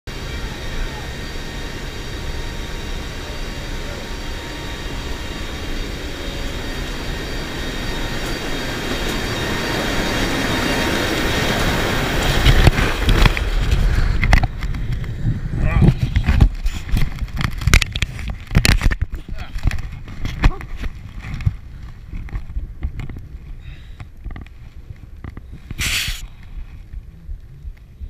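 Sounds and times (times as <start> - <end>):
rushing wind: 0.1 - 28.0
turboprop engines droning: 0.1 - 28.0
wind gusts and thumps buffeting: 1.5 - 28.0.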